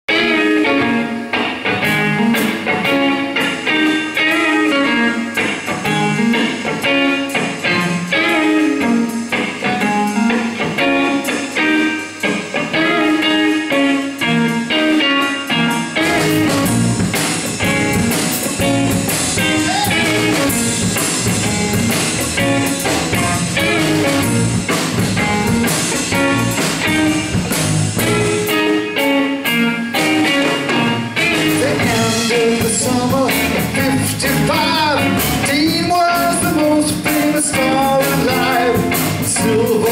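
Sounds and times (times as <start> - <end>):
blues-rock band playing: 0.1 - 39.9
electric guitar: 0.1 - 39.9.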